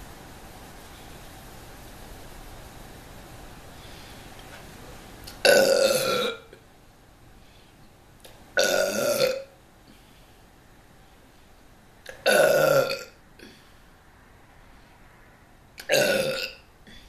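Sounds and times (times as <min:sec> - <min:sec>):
woman burping loudly: 0:05.4 - 0:06.6, 0:08.6 - 0:09.5, 0:12.1 - 0:13.6, 0:15.8 - 0:16.6.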